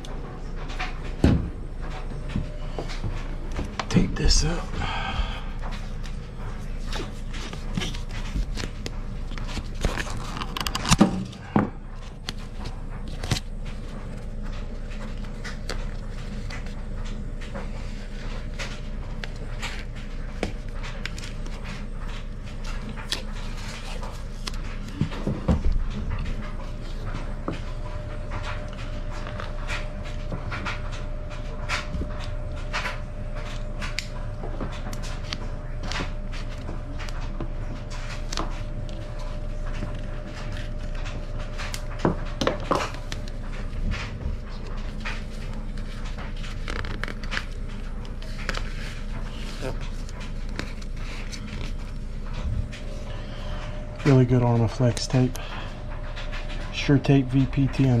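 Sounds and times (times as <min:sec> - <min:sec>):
steady low hum: 0:00.0 - 0:58.0
tape crackling and peeling: 0:02.2 - 0:58.0.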